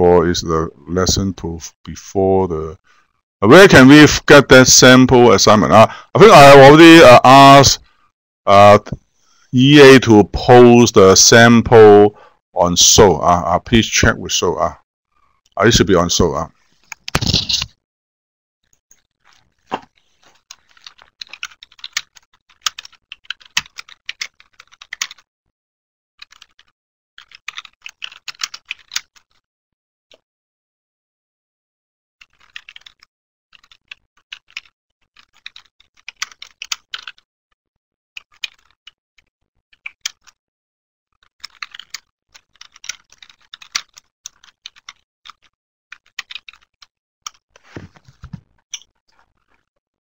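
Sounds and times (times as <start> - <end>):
typing on computer keyboard: 20.5 - 25.2, 26.2 - 29.4, 32.3 - 33.0, 33.6 - 37.2, 38.2 - 38.8, 41.4 - 47.4.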